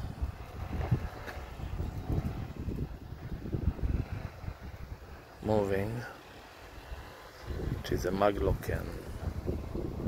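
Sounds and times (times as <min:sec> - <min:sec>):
wind buffeting microphone: 0:00.0 - 0:06.0, 0:06.7 - 0:10.0.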